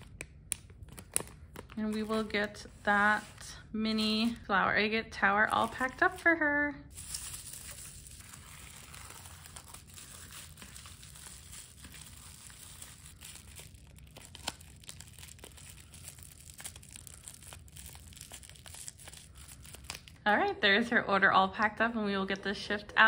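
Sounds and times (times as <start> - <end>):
bubble wrap crinkling: 0.0 - 4.4, 5.3 - 20.3.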